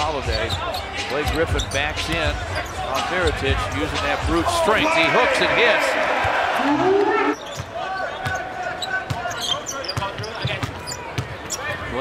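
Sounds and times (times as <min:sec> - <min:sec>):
crowd noise and voices: 0:00.0 - 0:12.0.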